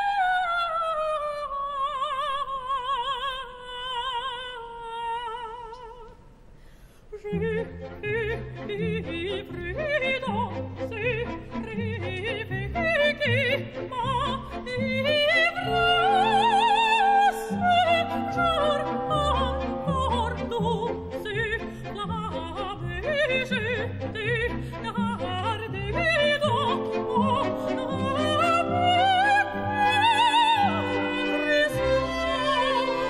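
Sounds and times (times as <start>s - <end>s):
operatic singing with vibrato: 7.1s - 33.0s
symphony orchestra low notes: 14.9s - 22.6s, 25.6s - 33.0s.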